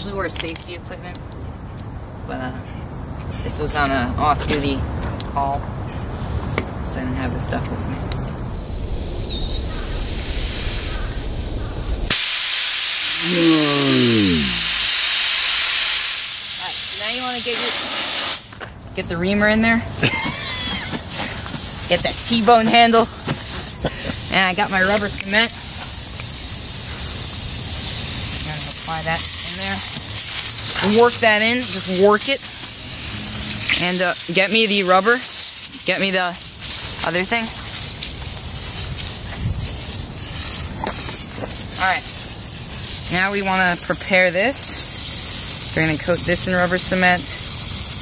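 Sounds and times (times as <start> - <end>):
air hissing out of tire: 5.9 - 6.7, 9.7 - 19.0, 19.7 - 48.0
low rumble: 7.8 - 12.2.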